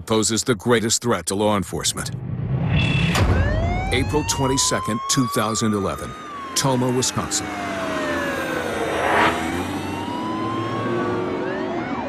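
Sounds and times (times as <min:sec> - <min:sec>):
police siren wailing: 0:03.2 - 0:12.0.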